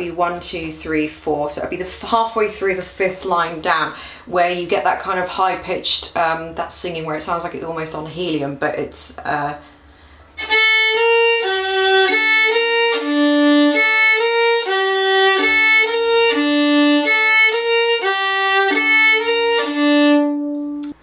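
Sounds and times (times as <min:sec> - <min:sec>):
solo violin melody: 0:10.4 - 0:21.0.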